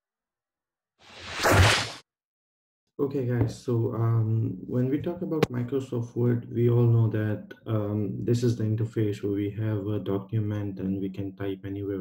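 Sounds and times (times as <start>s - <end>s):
whoosh: 1.1s - 2.0s.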